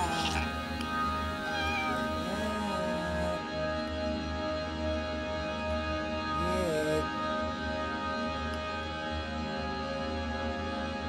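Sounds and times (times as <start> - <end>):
cat meowing: 0.0 - 3.3
music of held tones: 0.0 - 4.2.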